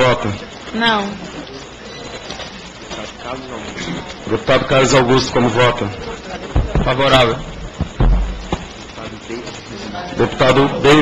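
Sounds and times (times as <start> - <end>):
steady room noise: 0.0 - 11.0
faint background voices: 0.1 - 11.0.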